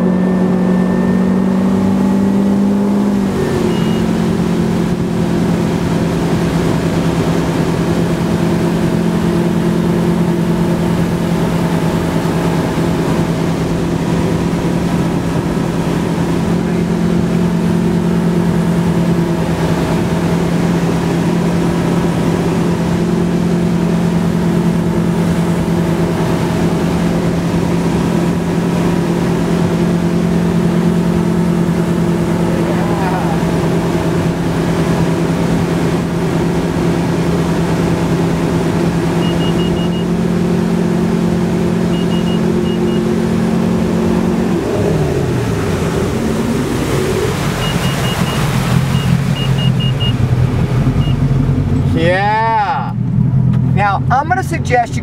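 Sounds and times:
wake noise: 0:00.0 - 0:52.4
boat engine running: 0:00.0 - 0:55.0
wind: 0:00.0 - 0:55.0
short high beeps: 0:03.6 - 0:04.2, 0:39.2 - 0:40.2, 0:41.9 - 0:43.2, 0:47.6 - 0:50.2, 0:51.0 - 0:51.2.

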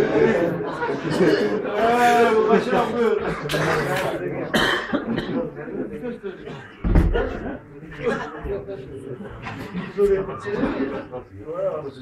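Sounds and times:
men talking: 0:00.0 - 0:12.0
cough: 0:03.4 - 0:05.6.

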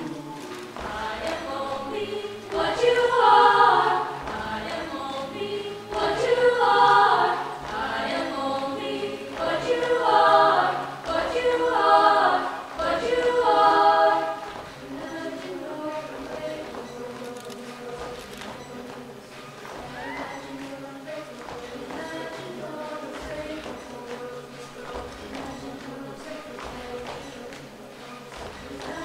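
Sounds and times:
choir singing a cappella: 0:00.0 - 0:29.0.

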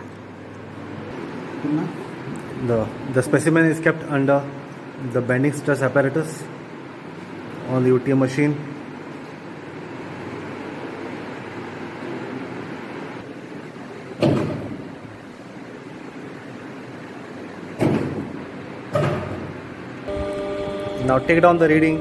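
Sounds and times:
sharp knocks: 0:17.8 - 0:19.5.

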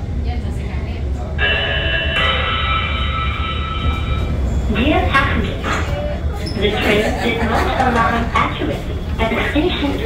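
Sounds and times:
low hum of train car: 0:00.0 - 0:10.0
train doors opening: 0:01.4 - 0:10.0.

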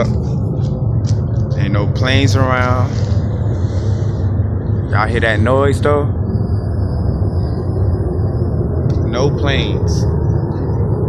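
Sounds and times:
loud low rumble from sky: 0:00.0 - 0:11.0.

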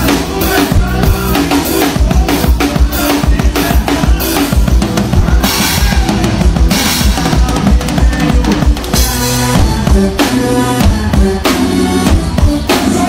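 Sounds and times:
band playing bass: 0:00.0 - 0:13.0
drum kit played fast: 0:00.0 - 0:13.0.

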